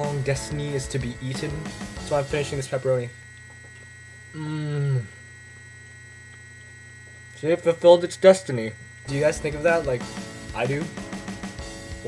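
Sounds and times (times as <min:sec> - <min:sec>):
faint high whines: 0:00.0 - 0:12.0
low electrical mains hum: 0:00.0 - 0:12.0.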